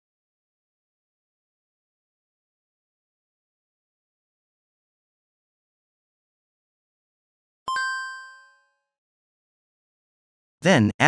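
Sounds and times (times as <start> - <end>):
bright chime: 7.7 - 8.7.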